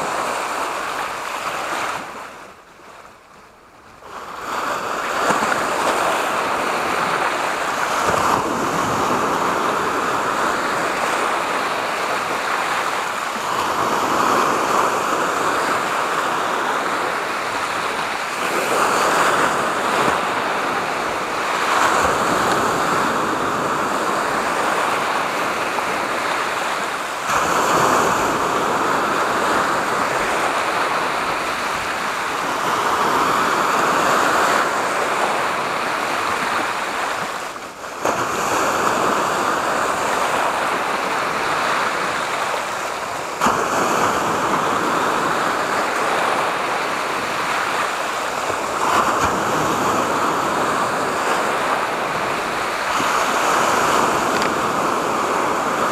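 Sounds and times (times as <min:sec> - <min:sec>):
sea waves breaking on rocks: 0:04.1 - 0:55.9.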